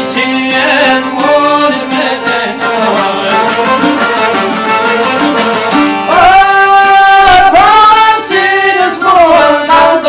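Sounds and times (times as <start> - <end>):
strummed lutes: 0.0 - 10.0.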